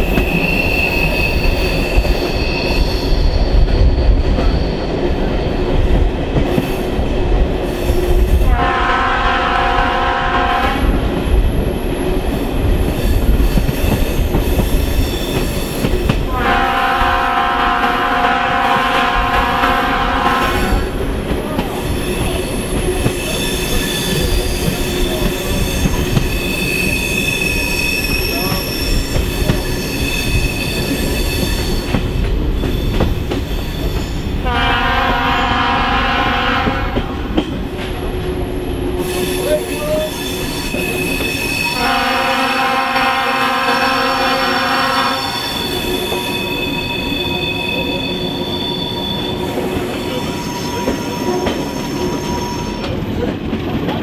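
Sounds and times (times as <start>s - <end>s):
train wheels squealing: 0.0s - 5.8s, 7.6s - 8.5s, 11.5s - 16.1s, 21.7s - 34.4s, 38.4s - 41.9s, 44.9s - 53.0s
rumble of train coaches: 0.0s - 54.0s
locomotive horn blasts: 8.5s - 10.9s, 16.3s - 20.9s, 34.4s - 37.0s, 41.8s - 45.4s.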